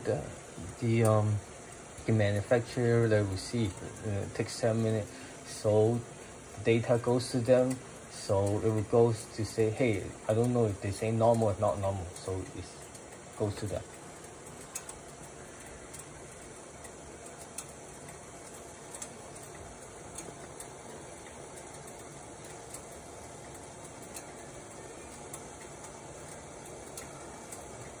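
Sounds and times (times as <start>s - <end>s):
water heating hiss: 0.0s - 28.0s.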